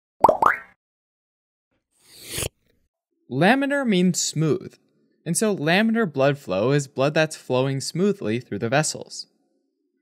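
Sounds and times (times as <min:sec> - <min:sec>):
rising cartoon plops: 0:00.2 - 0:00.8.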